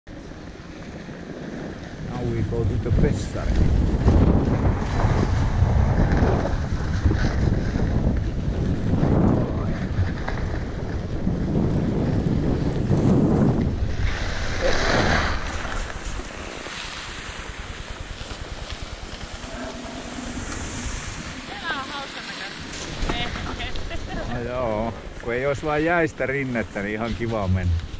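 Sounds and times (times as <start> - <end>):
skis scraping over icy snow: 0.2 - 27.9
wind buffeting microphone: 1.0 - 27.9.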